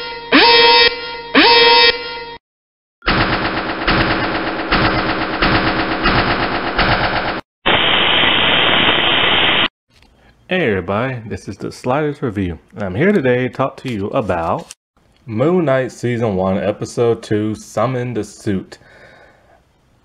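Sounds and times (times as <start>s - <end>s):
rapid machine-gun-like rattle: 3.1s - 7.4s.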